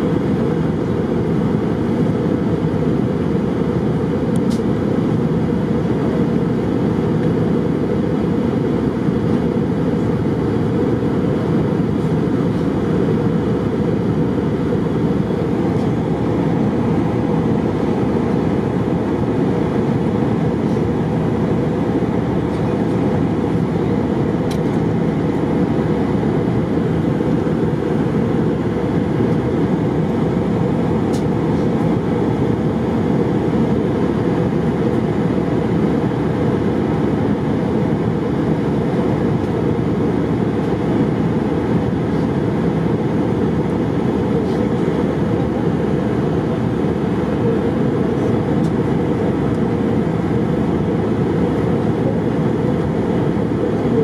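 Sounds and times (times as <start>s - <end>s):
airplane cabin engine roar: 0.0s - 54.0s.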